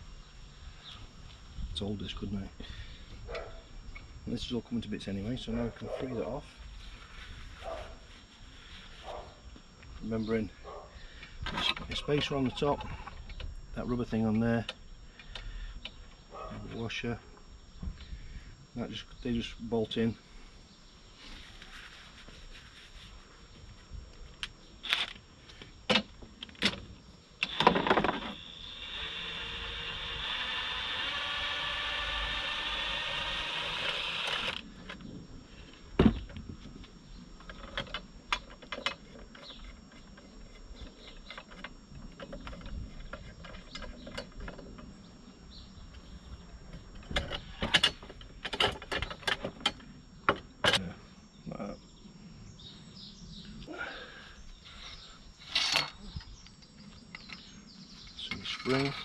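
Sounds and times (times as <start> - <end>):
impact driver whining: 27.4 - 34.7
clicks and knocks of parts: 36.2 - 44.9, 46.7 - 50.9.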